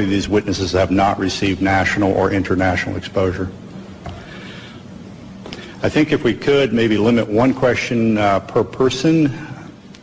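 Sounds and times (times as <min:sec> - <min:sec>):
man speaking: 0:00.0 - 0:03.6, 0:05.8 - 0:09.7
steady low hum: 0:00.0 - 0:10.0.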